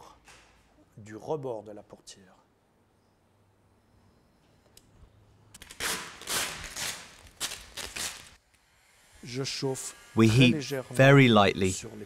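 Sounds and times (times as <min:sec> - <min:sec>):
vinyl film crackling as pulled: 0:05.6 - 0:08.4.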